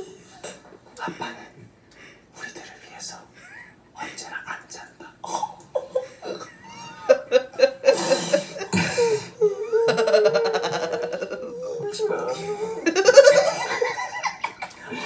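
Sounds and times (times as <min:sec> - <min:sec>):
whispered voices: 0:00.0 - 0:03.4, 0:04.0 - 0:05.6, 0:11.1 - 0:13.3
stifled giggling and laughter: 0:05.5 - 0:15.0.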